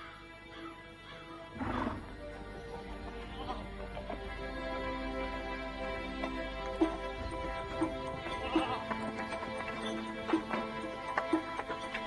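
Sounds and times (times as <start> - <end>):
background music: 0.0 - 12.0
horse neighing: 1.3 - 2.2.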